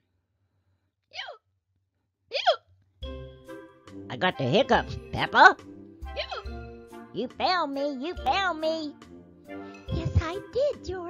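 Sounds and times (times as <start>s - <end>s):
person hiccuping: 2.3s - 2.6s, 6.1s - 6.5s
background music: 3.0s - 11.0s.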